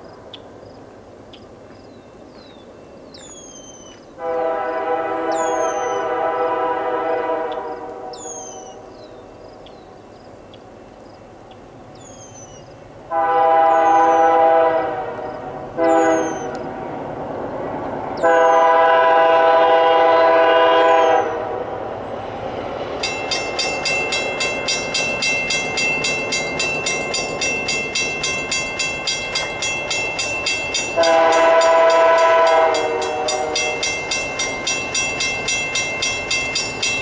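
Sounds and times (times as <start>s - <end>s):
locomotive air horn: 4.2s - 8.8s, 13.1s - 16.6s, 18.2s - 21.8s, 30.8s - 34.0s
level crossing bell ringing: 23.0s - 37.0s.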